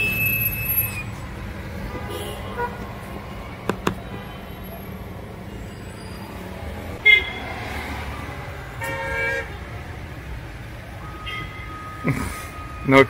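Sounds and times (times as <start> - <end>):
car horns honking: 0.0 - 1.2, 1.8 - 6.2, 7.0 - 7.8, 8.7 - 9.7, 11.0 - 13.0
traffic rumble: 0.0 - 13.0.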